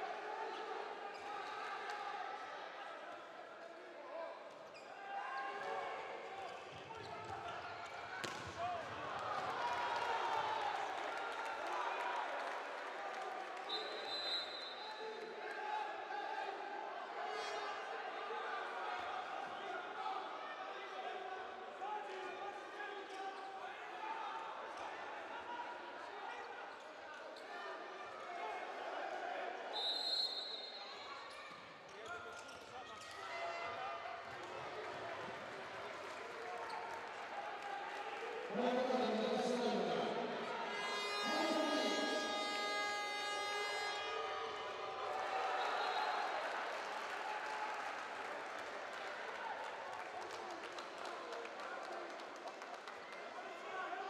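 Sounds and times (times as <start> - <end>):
ball bouncing on court: 8.2 - 8.6
referee's whistle: 13.7 - 15.0, 29.7 - 31.0, 40.7 - 44.2, 45.4 - 46.3
hum of crowd voices: 33.7 - 54.0.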